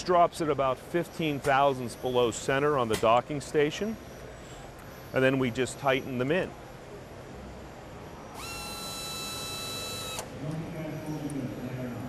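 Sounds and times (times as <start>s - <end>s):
electric motor whine: 8.3s - 10.3s.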